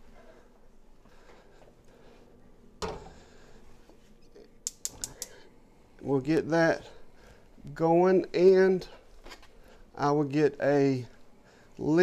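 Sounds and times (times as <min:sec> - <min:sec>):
gas burner igniter ticks: 0:04.6 - 0:05.4.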